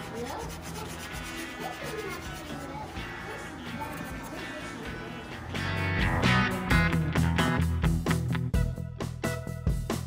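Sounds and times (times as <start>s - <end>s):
knife sawing and scraping board: 0.0s - 2.9s.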